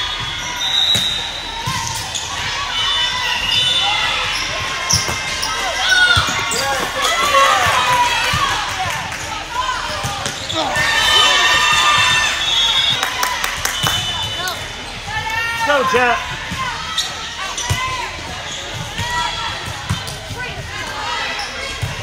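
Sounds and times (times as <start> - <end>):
players calling: 0.0 - 22.0
spectators shouting and cheering: 0.0 - 22.0.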